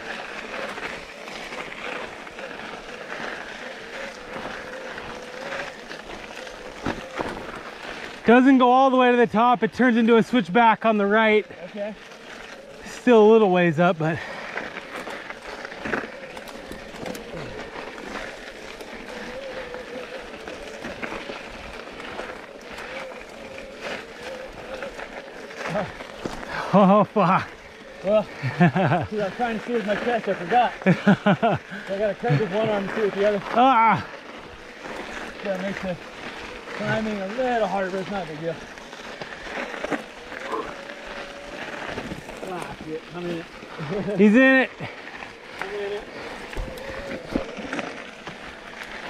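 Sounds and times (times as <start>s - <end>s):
bike tyres crunching on dirt: 0.0s - 49.0s.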